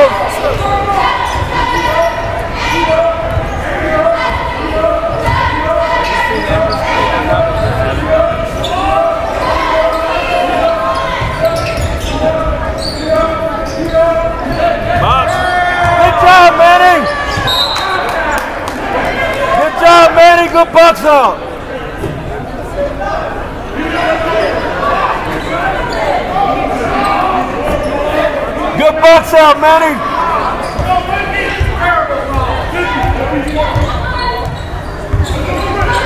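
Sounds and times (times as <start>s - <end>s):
voices calling out: 0.0s - 22.0s.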